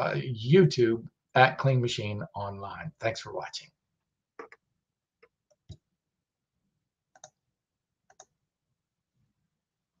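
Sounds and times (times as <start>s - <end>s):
computer mouse clicks: 4.4s - 4.6s, 7.1s - 7.4s, 8.1s - 8.4s.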